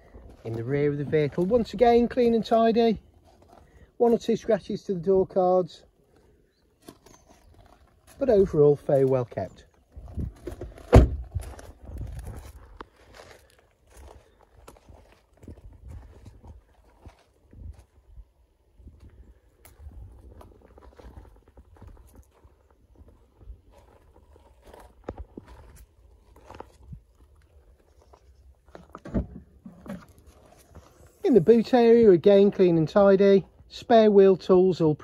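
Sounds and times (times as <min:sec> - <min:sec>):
footsteps crunching on gravel: 0:00.0 - 0:04.6, 0:06.8 - 0:18.2, 0:19.0 - 0:33.7
car door shutting with thud: 0:10.8 - 0:11.3.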